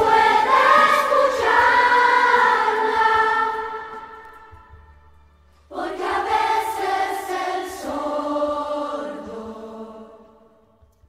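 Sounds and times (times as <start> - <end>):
choir singing held notes: 0.0 - 10.7.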